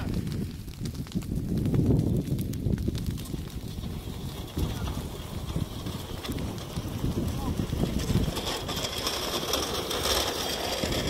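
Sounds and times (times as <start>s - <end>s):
burning brush crackling: 0.0s - 11.0s
fire pops and clicks: 0.0s - 11.0s
wind buffeting microphone: 0.0s - 11.0s.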